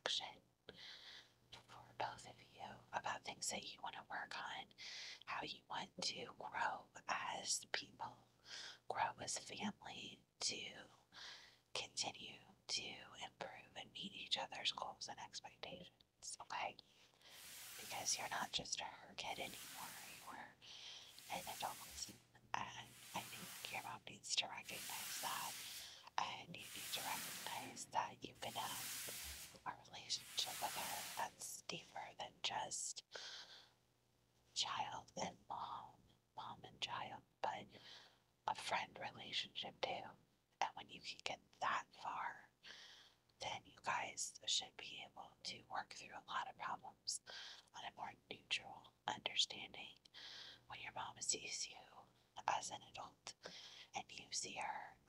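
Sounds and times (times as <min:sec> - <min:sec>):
woman whispering: 0:00.0 - 0:00.4, 0:01.6 - 0:11.0, 0:11.8 - 0:16.8, 0:17.4 - 0:33.1, 0:34.6 - 0:37.7, 0:38.5 - 0:42.5, 0:43.4 - 0:50.1, 0:50.7 - 0:55.0.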